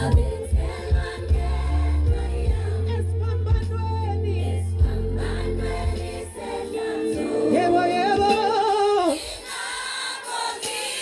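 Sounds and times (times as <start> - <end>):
crowd singing along: 0.0 - 11.0.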